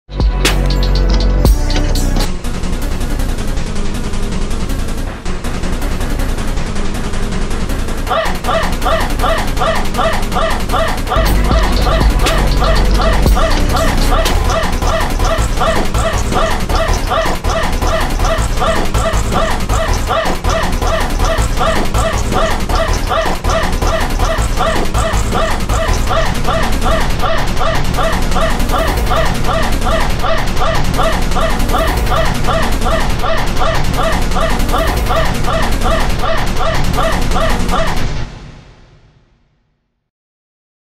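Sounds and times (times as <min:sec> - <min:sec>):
music: 0:00.0 - 0:40.1
heavy bass: 0:00.1 - 0:38.8
steady low hum: 0:01.5 - 0:38.7.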